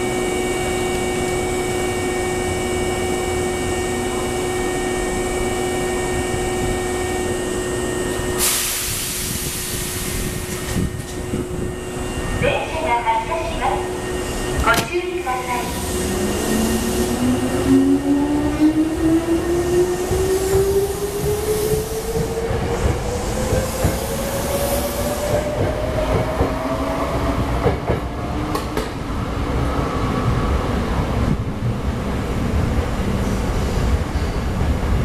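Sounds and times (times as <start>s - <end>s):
wheels rumbling on rail: 0.0s - 35.0s.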